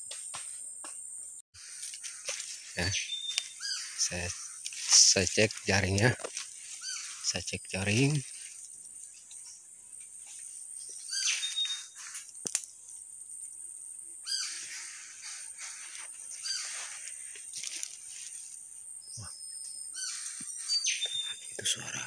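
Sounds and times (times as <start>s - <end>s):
insect drone: 0.0s - 22.0s
songbird whistling: 2.9s - 4.0s, 10.9s - 12.0s, 19.0s - 21.5s.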